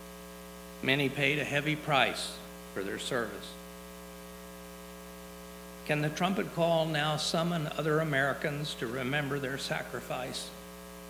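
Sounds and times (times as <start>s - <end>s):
electrical mains hum: 0.0s - 11.0s
man's voice: 0.8s - 3.6s, 5.8s - 10.6s.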